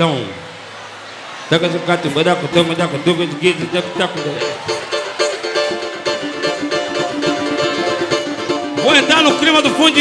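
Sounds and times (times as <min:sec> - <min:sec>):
strummed samba chords: 0:02.2 - 0:10.0.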